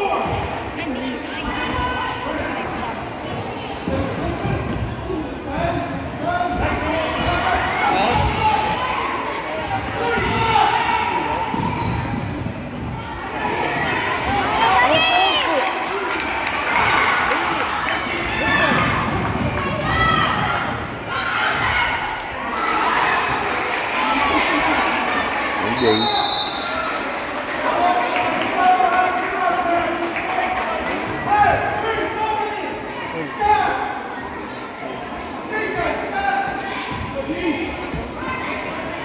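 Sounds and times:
voices echoing in hall: 0:00.0 - 0:39.0
referee's whistle blowing: 0:25.7 - 0:26.8.

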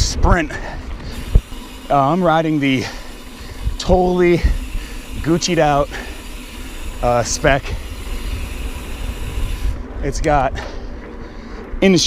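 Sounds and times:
wind rumbling on microphone: 0:00.0 - 0:11.8
bike tyres hissing on dirt: 0:00.6 - 0:09.9.

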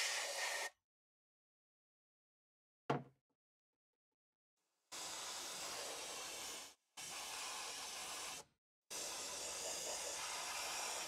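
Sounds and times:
airbrush hissing: 0:00.0 - 0:00.7, 0:05.0 - 0:08.4, 0:09.0 - 0:11.0.

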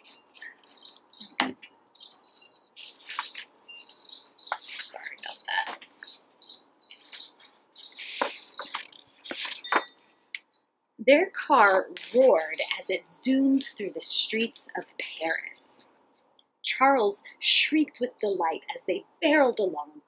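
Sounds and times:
book pages rustling: 0:00.0 - 0:01.6, 0:02.8 - 0:10.0
small birds chirping: 0:00.0 - 0:10.7, 0:11.5 - 0:16.6.

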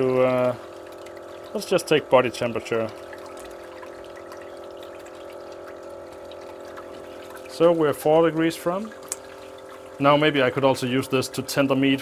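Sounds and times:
circulation pump humming: 0:00.0 - 0:12.0.

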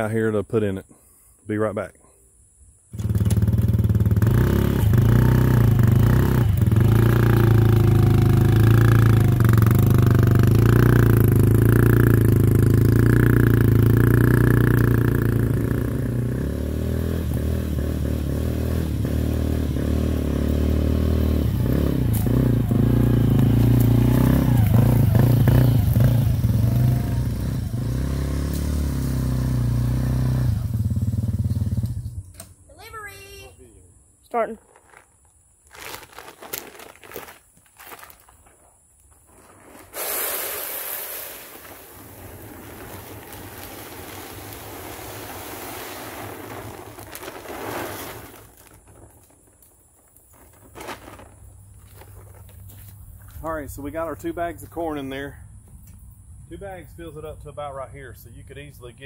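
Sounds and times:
quad bike engine running: 0:03.0 - 0:32.2.

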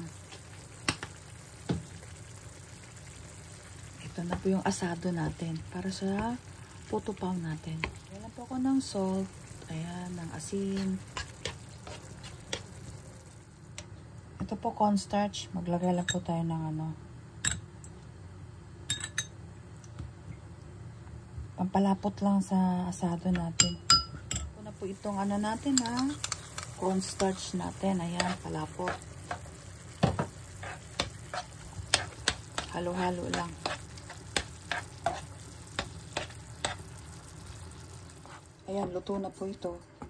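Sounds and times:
faint sizzle: 0:00.0 - 0:40.0
metal spoon clinking glass bowl: 0:18.9 - 0:19.3
spoon knocking against pan: 0:28.2 - 0:36.8.

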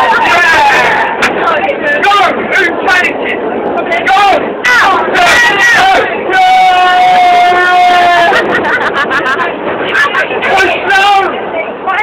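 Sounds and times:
excited talking and shouting: 0:00.0 - 0:12.0.

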